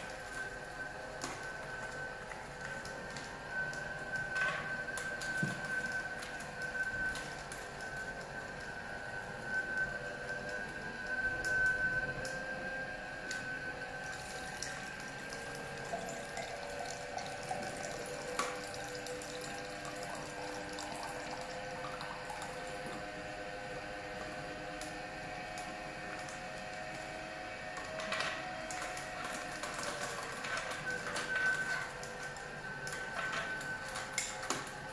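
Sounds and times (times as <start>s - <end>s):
juicer motor whine: 0.0s - 34.9s
liquid pouring into a glass: 14.0s - 22.7s.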